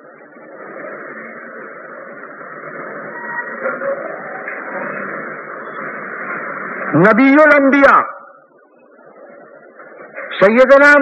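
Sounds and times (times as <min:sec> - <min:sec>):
muffled hiss and murmur: 0:00.0 - 0:11.0
man's voice: 0:06.9 - 0:08.3, 0:10.3 - 0:11.0.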